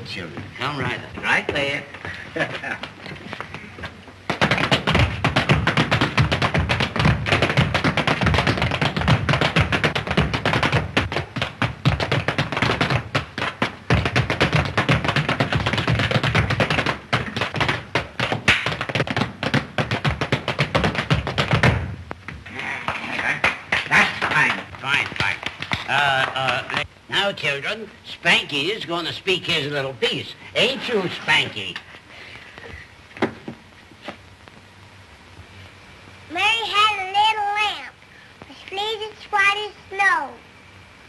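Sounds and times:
foot taps and stamps: 0.3s - 26.9s, 32.5s - 34.7s.

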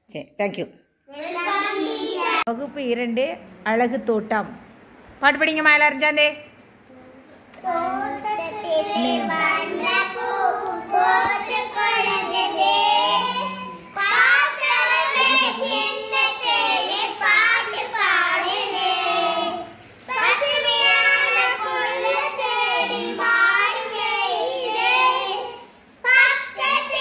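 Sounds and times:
young children singing: 1.1s - 2.5s, 7.6s - 27.0s.

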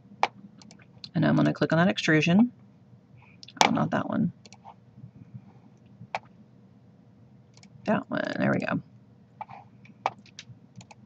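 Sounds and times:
computer mouse clicks: 0.2s - 0.9s, 4.4s - 4.8s, 7.5s - 7.8s, 9.4s - 11.0s.

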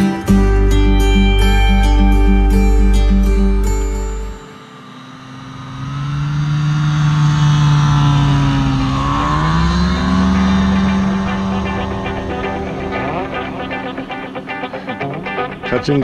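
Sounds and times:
plane engine drone: 0.0s - 16.0s.

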